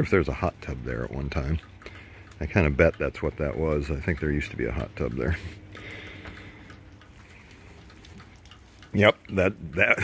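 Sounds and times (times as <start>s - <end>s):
light rain hiss: 0.0s - 10.0s.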